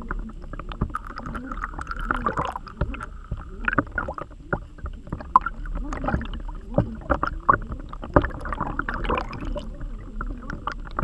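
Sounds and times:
knocks and clicks underwater: 0:00.0 - 0:11.0
underwater water noise: 0:00.0 - 0:11.0.

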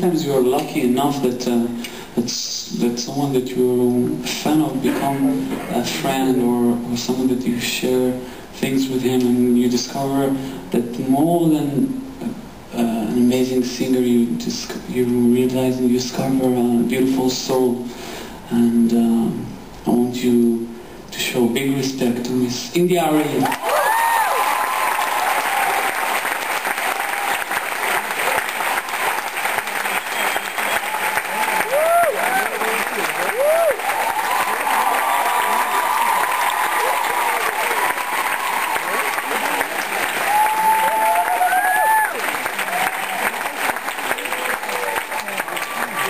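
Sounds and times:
people whooping: 0:23.4 - 0:26.2, 0:29.6 - 0:46.0
audience applauding: 0:23.4 - 0:46.0.

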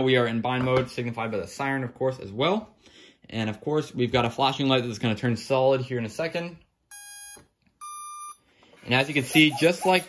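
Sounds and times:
electronic beeps: 0:06.9 - 0:08.4.

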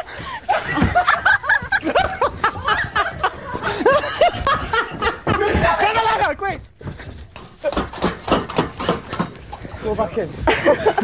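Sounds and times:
people running on hard floor: 0:00.0 - 0:11.0.

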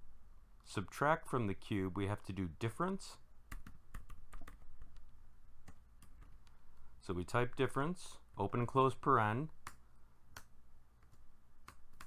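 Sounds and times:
computer keyboard typing: 0:03.5 - 0:06.5, 0:09.6 - 0:12.0.

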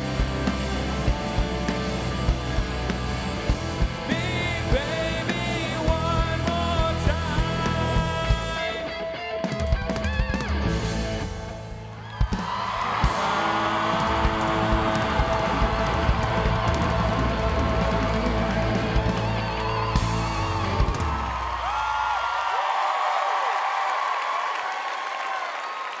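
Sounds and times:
audience applauding and cheering: 0:00.0 - 0:08.9, 0:10.0 - 0:26.0
rock band playing: 0:00.0 - 0:21.9.

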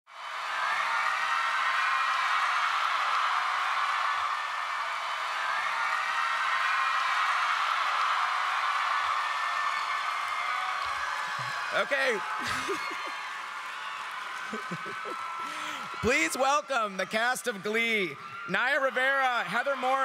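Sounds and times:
audience applauding and cheering: 0:00.1 - 0:20.0.

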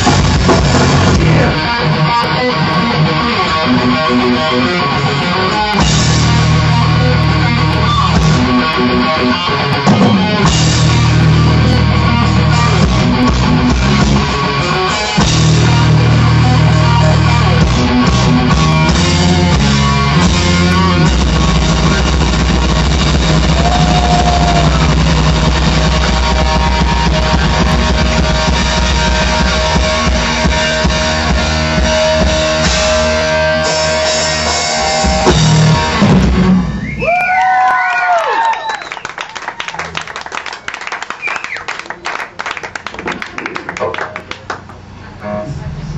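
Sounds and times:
distorted electric guitar: 0:00.0 - 0:37.0, 0:44.8 - 0:45.9
drum kit: 0:00.0 - 0:37.4
bass guitar: 0:00.0 - 0:37.8, 0:42.7 - 0:45.9
audience cheering: 0:23.2 - 0:29.4, 0:34.2 - 0:44.7
person whooping: 0:23.4 - 0:25.0, 0:36.9 - 0:40.0
audience clapping: 0:37.0 - 0:44.9.

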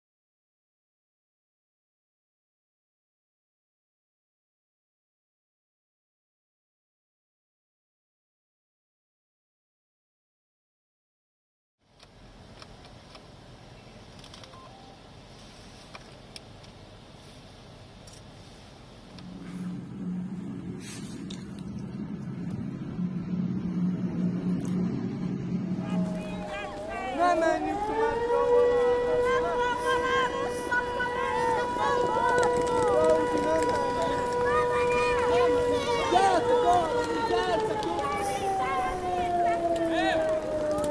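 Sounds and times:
street traffic noise: 0:11.8 - 0:40.9
tracked vehicle engine rumble: 0:11.9 - 0:40.9
air raid siren steady tone: 0:19.1 - 0:40.9
people's voices: 0:25.6 - 0:40.9
footsteps hurrying: 0:26.1 - 0:38.9.

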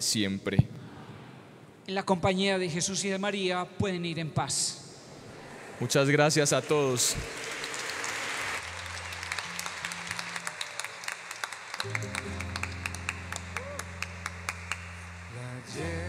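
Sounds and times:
congregation applauding: 0:06.3 - 0:16.0
rhythmic hand claps: 0:07.2 - 0:15.9
low sustained instrumental chords: 0:11.8 - 0:16.0.

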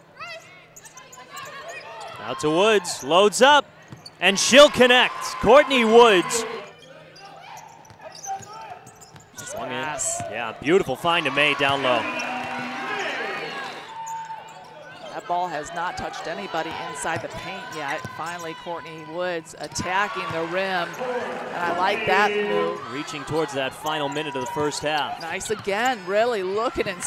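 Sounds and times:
arena crowd murmur: 0:04.3 - 0:06.7, 0:09.4 - 0:13.9, 0:19.9 - 0:27.0
sneakers squeaking on hardwood: 0:07.6 - 0:09.6
distant voices: 0:20.8 - 0:23.0.

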